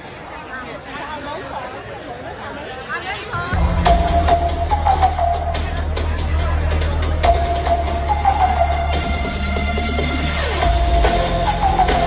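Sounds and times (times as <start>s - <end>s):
crowd chattering: 0.0s - 12.0s
music with deep bass: 3.6s - 12.0s.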